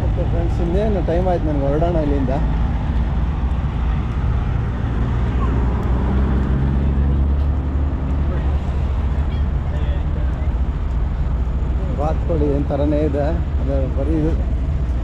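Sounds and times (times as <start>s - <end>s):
diesel truck engines idling: 0.0s - 15.0s.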